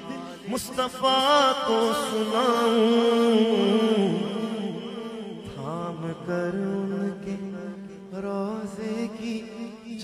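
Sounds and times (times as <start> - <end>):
man singing ornamented melody: 0.0 - 10.0.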